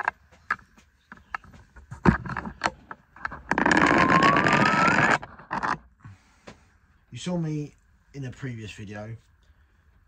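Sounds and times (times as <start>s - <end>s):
rising squeak: 3.5s - 5.7s.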